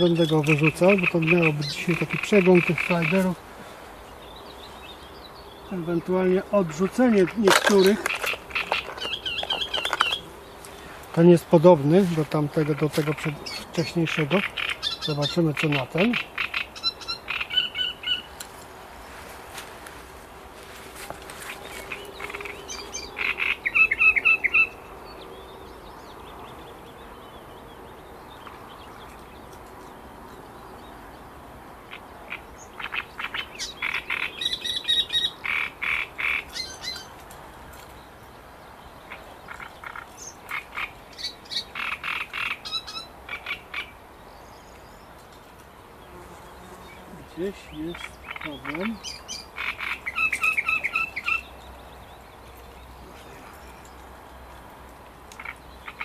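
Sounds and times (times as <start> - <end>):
frogs croaking: 0.0 - 3.4, 5.6 - 10.9, 12.4 - 18.4, 21.4 - 25.4, 31.8 - 37.0, 38.9 - 44.1, 46.7 - 52.1, 55.3 - 56.0.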